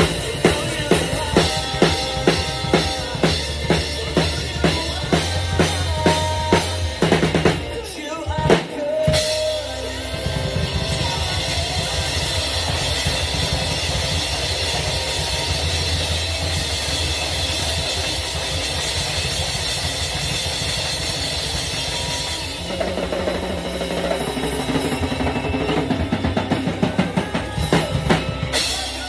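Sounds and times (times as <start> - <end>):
drum kit played with sticks: 0.0 - 29.0
recorded rock song: 0.0 - 29.0.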